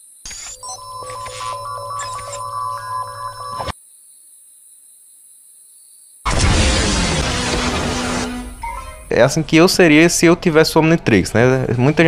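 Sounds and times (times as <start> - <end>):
electronic beeping tones: 0.3 - 3.8.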